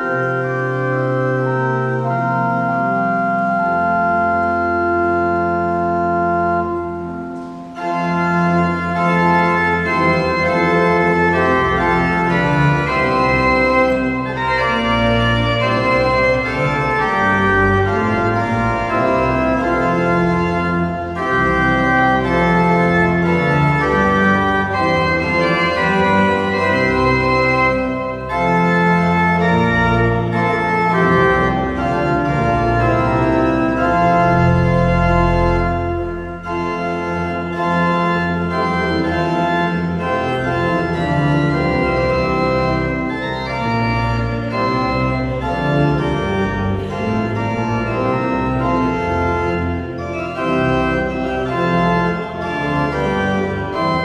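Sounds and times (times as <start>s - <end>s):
pipe organ playing a hymn: 0.0s - 54.0s.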